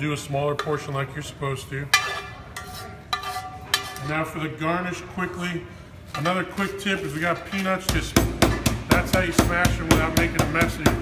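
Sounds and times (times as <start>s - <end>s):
metal tongs clinking on cookware: 1.9s - 4.4s, 6.1s - 7.9s.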